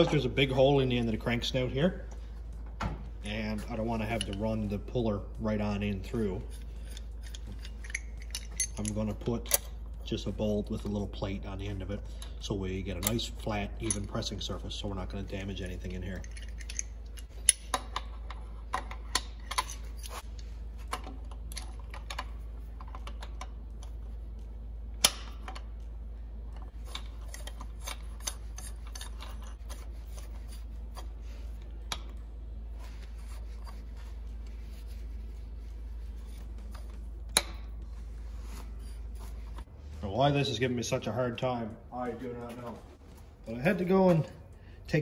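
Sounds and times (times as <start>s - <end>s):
steady low hum: 0.0s - 45.0s
metal clicks and clinks: 6.8s - 9.7s, 16.0s - 18.1s.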